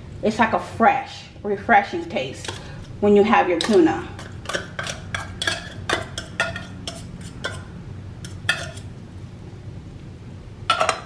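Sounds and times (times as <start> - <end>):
cutlery scraping metal cans: 3.6 - 7.7, 8.3 - 8.9.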